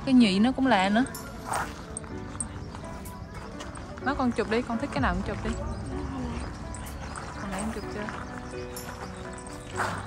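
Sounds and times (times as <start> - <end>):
soft music with held notes: 0.0 - 10.0.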